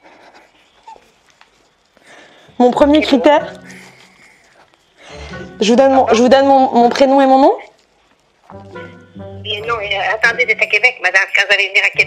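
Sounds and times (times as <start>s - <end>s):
stifled laughter: 3.6s - 4.7s.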